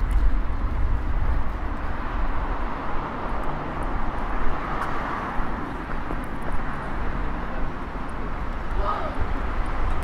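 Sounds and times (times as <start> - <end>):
city traffic: 0.0 - 10.0.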